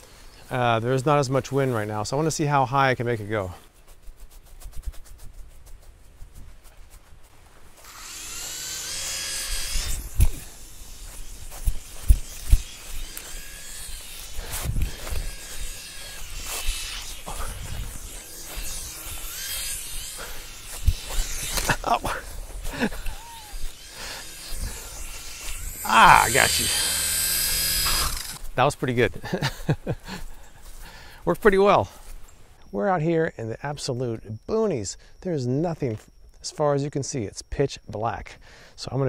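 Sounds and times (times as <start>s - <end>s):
small motor and propeller whining: 7.7s - 28.5s
wind on microphone: 14.4s - 15.7s.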